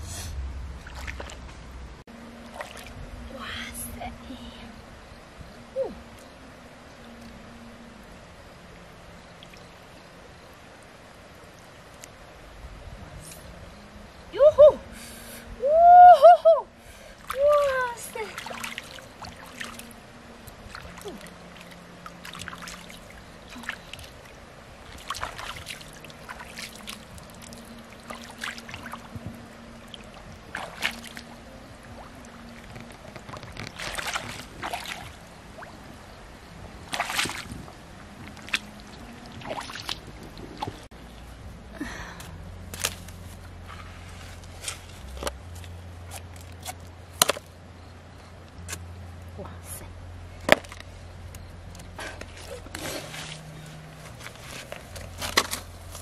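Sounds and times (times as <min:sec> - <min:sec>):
water splashing and dripping: 0:00.7 - 0:01.8, 0:02.4 - 0:03.6, 0:17.2 - 0:36.0, 0:36.7 - 0:41.3.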